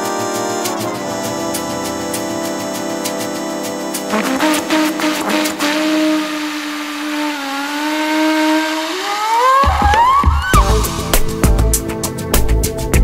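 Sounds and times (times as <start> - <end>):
drums and bass: 0.0 - 6.0, 9.6 - 13.0
flugelhorn long bending notes: 0.0 - 10.9
rising sweep: 4.0 - 12.2.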